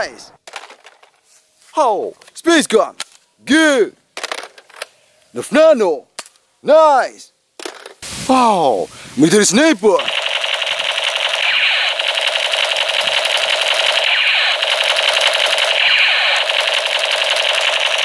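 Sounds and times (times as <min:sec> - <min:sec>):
toy gun machine-gun rattle: 0:10.0 - 0:18.0.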